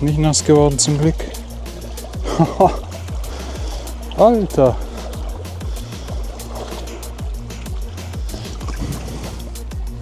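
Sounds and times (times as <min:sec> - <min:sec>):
creek water rushing: 0:00.0 - 0:10.0
music with bass kicks and hi-hat: 0:00.0 - 0:10.0.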